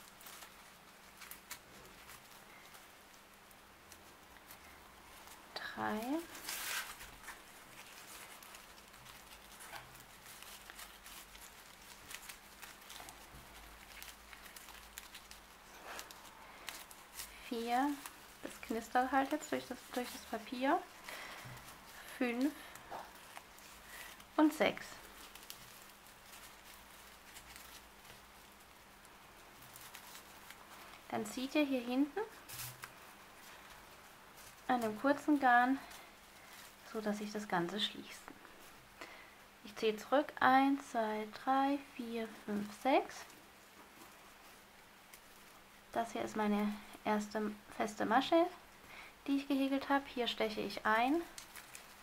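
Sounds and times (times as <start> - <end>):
paper yarn crackling and rustling: 0.0 - 52.0.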